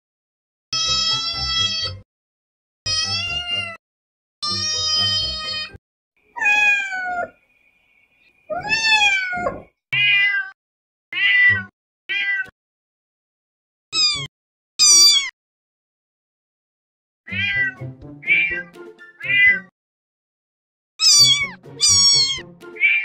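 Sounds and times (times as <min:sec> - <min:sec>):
cats and kittens meowing: 0:00.8 - 0:02.0, 0:02.9 - 0:03.8, 0:04.4 - 0:07.4, 0:08.5 - 0:10.6, 0:11.2 - 0:12.5, 0:14.0 - 0:15.3, 0:17.3 - 0:19.7, 0:21.0 - 0:23.0.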